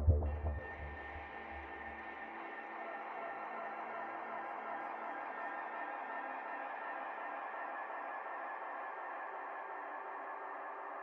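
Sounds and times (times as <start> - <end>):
sustained synth pad: 0.0 - 1.9.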